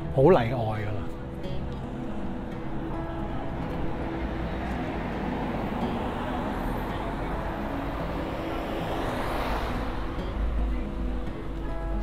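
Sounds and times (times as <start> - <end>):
street traffic on wet road: 1.2 - 12.0.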